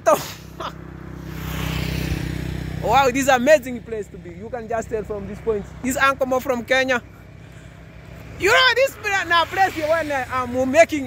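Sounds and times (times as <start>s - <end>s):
vehicle engine droning: 0.0s - 11.0s.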